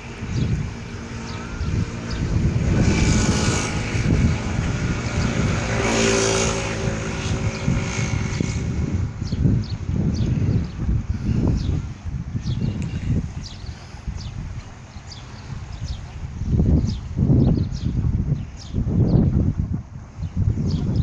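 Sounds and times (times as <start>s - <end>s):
propeller airplane engine drone: 0.0s - 21.0s.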